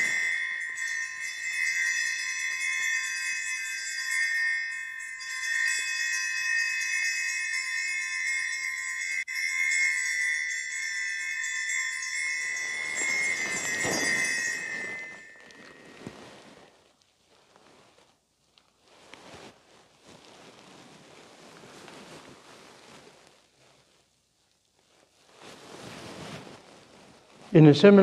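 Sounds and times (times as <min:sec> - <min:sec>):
altar bells jingling: 0:00.0 - 0:16.6.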